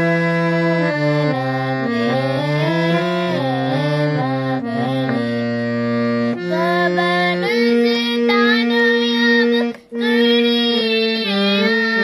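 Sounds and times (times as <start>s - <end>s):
keyboard chords: 0.0s - 12.0s
girl singing: 2.1s - 5.4s, 6.4s - 12.0s.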